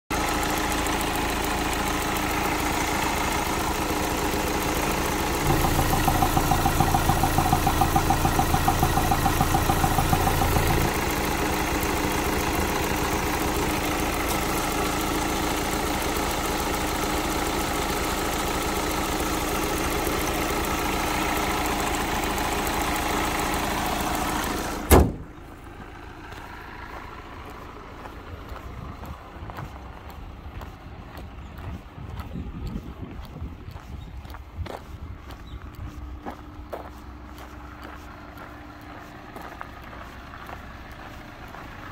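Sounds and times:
diesel engine idling: 0.1s - 41.9s
faint outdoor background: 0.1s - 41.9s.

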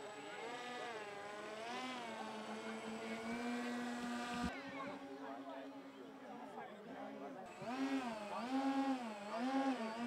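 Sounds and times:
model aircraft motor droning: 0.0s - 5.8s, 7.5s - 10.0s.

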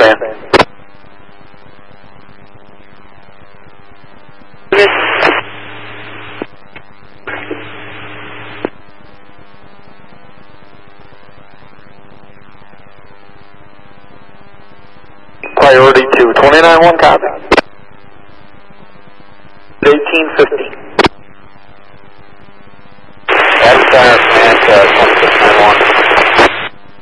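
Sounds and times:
radio transmission burst: 0.0s - 0.7s, 4.7s - 17.7s, 18.4s - 27.0s
radio static hiss: 0.0s - 27.0s.

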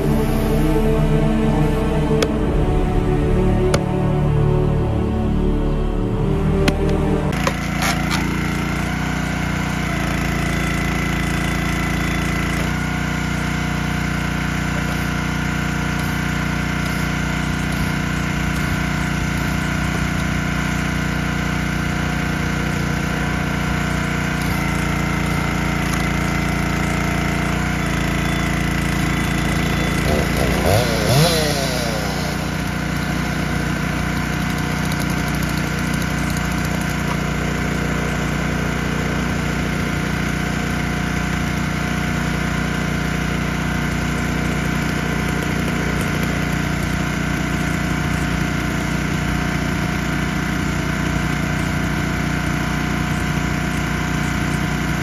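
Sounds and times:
rising and falling pitch sweeps: 0.0s - 7.5s
small gasoline engine running: 6.2s - 55.0s.

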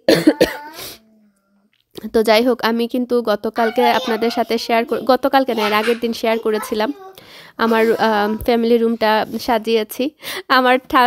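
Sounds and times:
person coughing: 0.0s - 1.0s.

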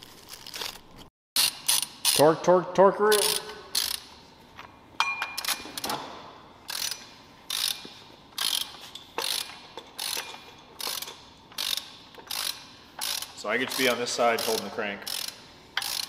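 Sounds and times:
hand ratchet wrench ratcheting: 1.4s - 2.4s, 3.1s - 4.2s, 6.7s - 16.0s.

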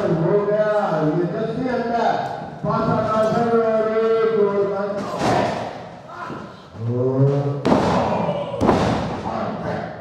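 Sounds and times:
man shouting: 7.8s - 8.8s.

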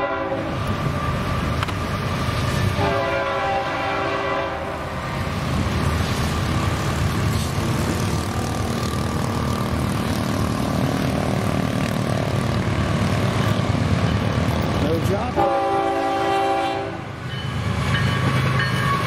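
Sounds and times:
locomotive air horn blast: 0.0s - 0.6s, 2.8s - 4.8s, 15.3s - 17.1s
diesel locomotive engine rumble: 0.0s - 19.0s.

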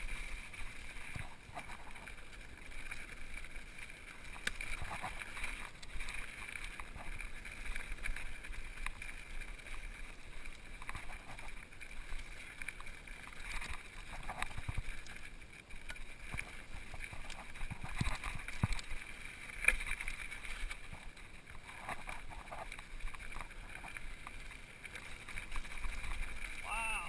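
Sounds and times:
bike tyres rushing over gravel: 0.0s - 27.0s.

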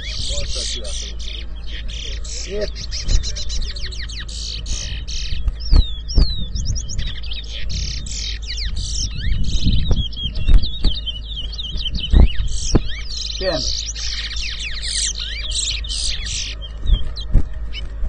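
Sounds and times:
finches whistling songs: 0.0s - 18.0s.

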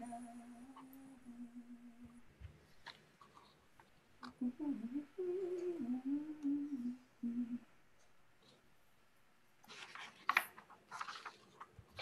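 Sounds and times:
woman humming a slow tune: 0.0s - 2.2s, 4.4s - 7.7s.

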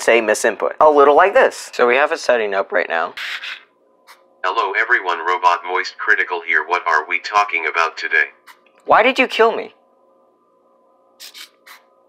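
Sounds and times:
faint steady hum: 0.0s - 12.0s
short hissing sounds: 11.2s - 11.9s.

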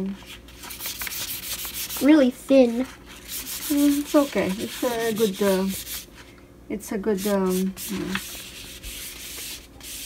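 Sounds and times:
paper rustling: 0.0s - 6.3s, 7.2s - 10.0s.

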